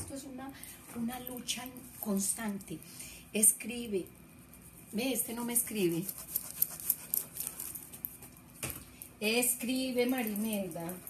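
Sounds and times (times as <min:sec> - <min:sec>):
pen scribbling on paper: 0:05.0 - 0:07.6.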